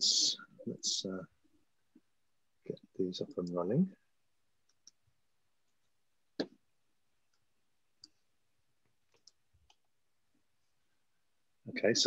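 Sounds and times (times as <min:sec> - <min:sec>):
computer mouse clicks: 0:09.1 - 0:09.9.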